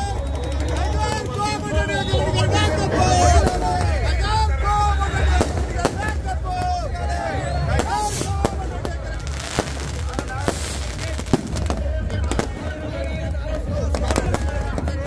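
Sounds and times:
crowd shouting: 0:00.0 - 0:15.0
firecrackers cracking and popping: 0:07.7 - 0:15.0.

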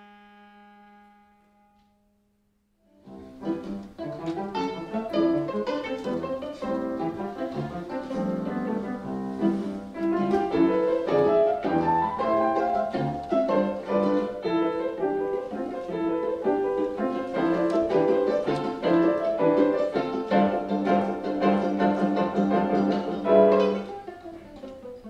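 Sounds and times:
viola bowed note: 0:00.0 - 0:02.0
piano accompaniment: 0:02.9 - 0:25.0
viola pizzicato: 0:03.0 - 0:25.0.

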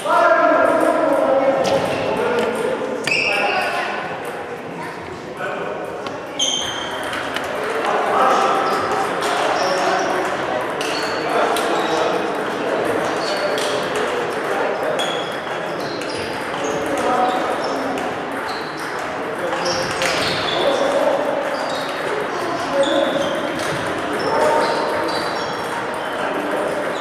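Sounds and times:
table tennis balls clicking: 0:00.8 - 0:02.9, 0:05.9 - 0:27.0.

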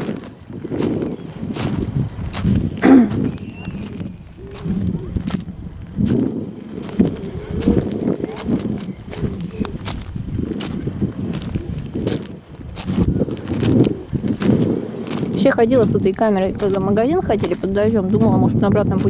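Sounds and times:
footsteps crunching on pebbles: 0:00.0 - 0:19.0
wind rumbling on microphone: 0:00.0 - 0:19.0.

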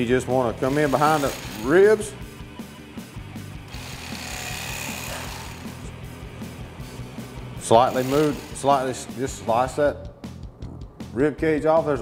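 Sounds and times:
electric knife buzzing: 0:00.5 - 0:02.0, 0:03.6 - 0:09.6.

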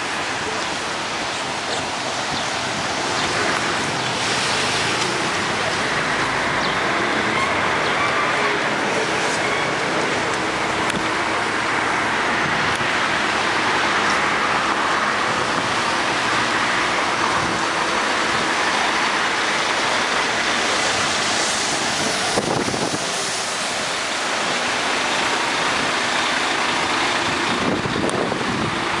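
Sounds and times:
traffic on wet road: 0:00.0 - 0:29.0
cement mixer truck passing: 0:00.1 - 0:29.0.

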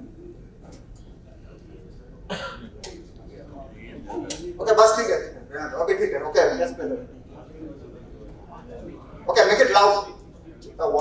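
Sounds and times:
room hum: 0:00.0 - 0:11.0
person coughing: 0:02.3 - 0:02.8.

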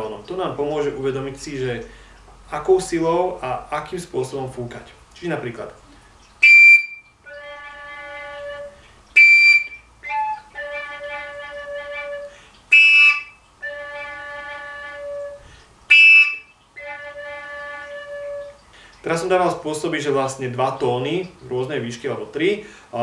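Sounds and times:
overtone flute notes: 0:06.4 - 0:18.6.

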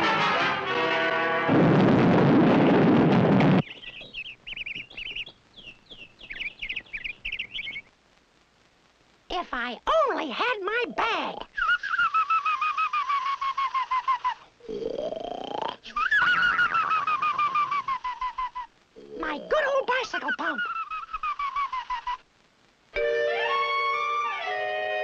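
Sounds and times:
brass and woodwind music cue: 0:00.0 - 0:01.6
person muttering: 0:14.6 - 0:16.8, 0:17.8 - 0:21.2.

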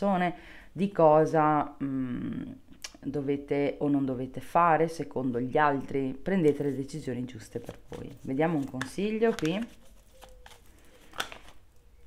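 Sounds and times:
cards rustling and shuffling: 0:06.4 - 0:12.0.

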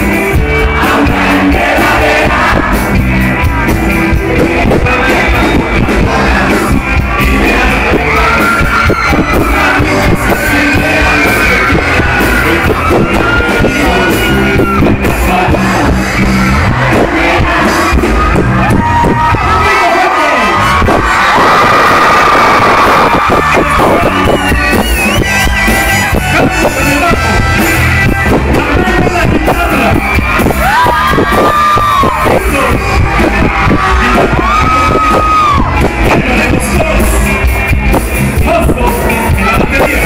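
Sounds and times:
live rock band playing: 0:00.0 - 0:40.0
person singing: 0:03.4 - 0:18.2.

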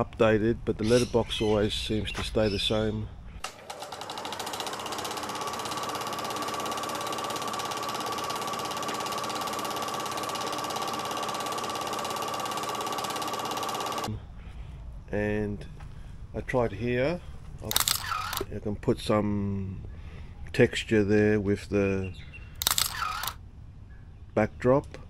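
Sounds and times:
film projector clattering: 0:03.5 - 0:14.1, 0:17.7 - 0:18.5, 0:22.6 - 0:23.4.

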